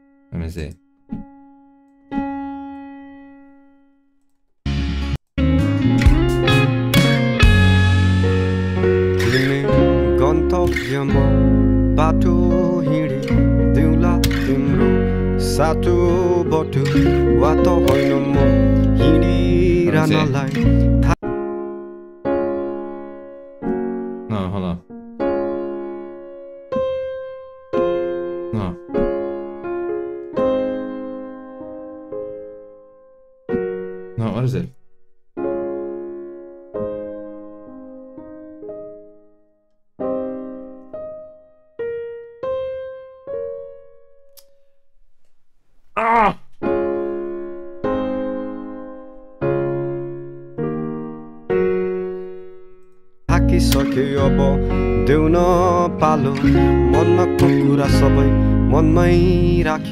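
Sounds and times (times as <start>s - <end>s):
piano chords ringing out: 0.0s - 44.4s, 46.6s - 59.9s
piano note ringing: 5.4s - 32.8s.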